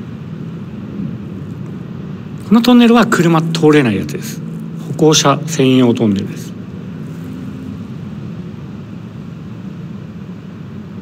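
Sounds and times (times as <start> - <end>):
low rumble in tunnel: 0.0 - 11.0.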